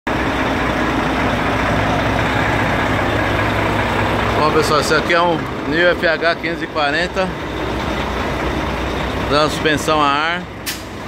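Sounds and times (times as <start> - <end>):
diesel truck engine idling: 0.1 - 11.0.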